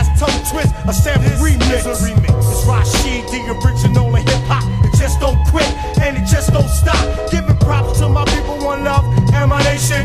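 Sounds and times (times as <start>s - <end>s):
deep bass line: 0.0s - 10.0s
rapping over a beat: 0.0s - 10.0s.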